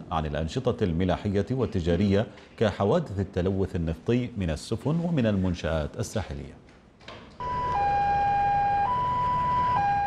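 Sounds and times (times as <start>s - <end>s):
two-tone siren: 7.4s - 10.0s.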